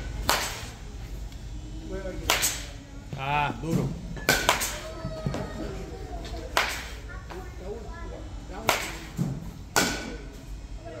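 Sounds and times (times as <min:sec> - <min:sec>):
bat cracking against ball: 0:00.2 - 0:00.7, 0:02.2 - 0:02.8, 0:04.3 - 0:04.9, 0:06.5 - 0:07.0, 0:08.6 - 0:10.2
voices talking: 0:00.7 - 0:11.0.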